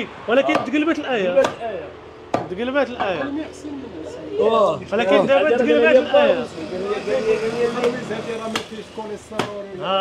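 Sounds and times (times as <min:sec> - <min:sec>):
cleaver chopping on wooden block: 0:01.4 - 0:01.6, 0:02.3 - 0:02.6, 0:07.8 - 0:08.8, 0:09.4 - 0:09.6.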